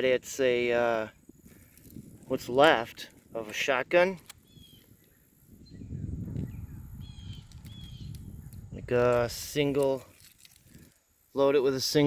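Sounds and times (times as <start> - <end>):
faint high bird chirp: 4.4 - 8.6.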